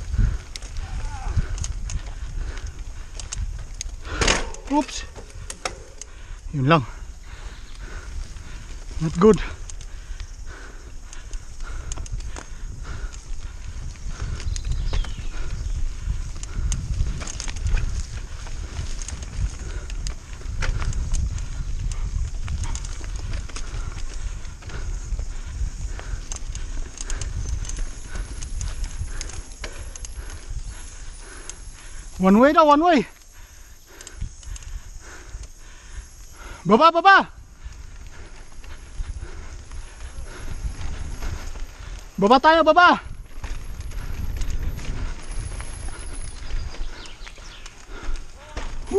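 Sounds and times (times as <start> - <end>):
wind on microphone: 0.0 - 32.2, 33.3 - 36.6, 37.3 - 48.9
bike chain and frame rattling: 0.0 - 48.9.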